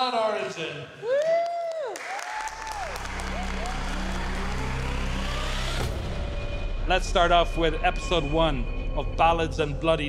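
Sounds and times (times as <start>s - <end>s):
people whooping: 1.0s - 5.7s
small group clapping: 1.1s - 5.8s
low music swell rising in pitch: 2.7s - 10.0s.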